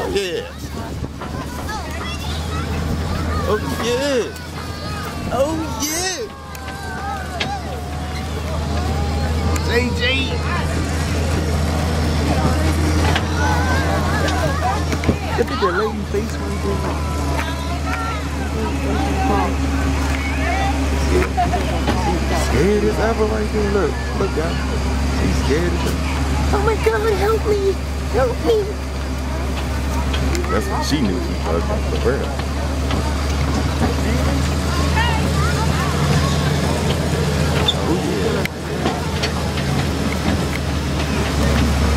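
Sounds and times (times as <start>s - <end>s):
low engine drone: 0.0s - 41.9s
riders talking: 0.0s - 41.9s.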